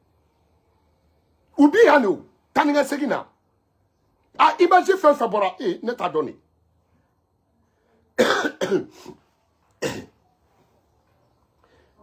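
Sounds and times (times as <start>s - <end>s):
man coughing: 8.2s - 9.2s, 9.8s - 10.2s.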